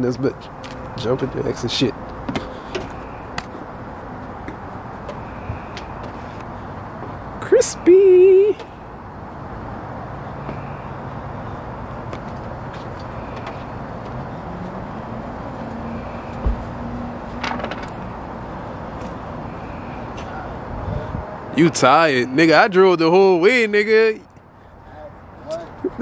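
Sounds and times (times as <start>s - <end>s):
dull thump: 16.4s - 16.7s.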